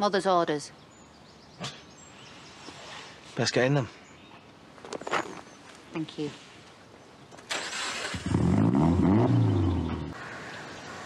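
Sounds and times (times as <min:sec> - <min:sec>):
car engine starting and revving: 0:07.5 - 0:10.2.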